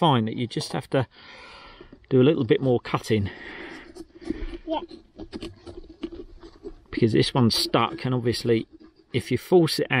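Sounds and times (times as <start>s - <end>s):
small saw cutting pumpkin: 3.3s - 9.6s.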